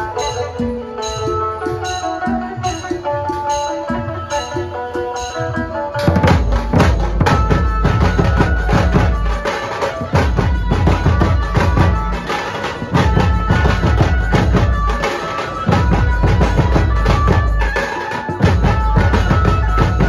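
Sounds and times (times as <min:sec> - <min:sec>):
band music with fast drumming: 0:00.0 - 0:20.0.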